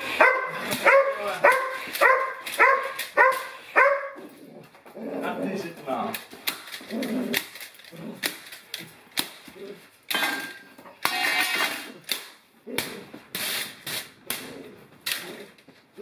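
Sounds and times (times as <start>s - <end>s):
dog and person scuffling: 0.0s - 6.0s
clicks and knocks on tiled floor: 6.1s - 16.0s.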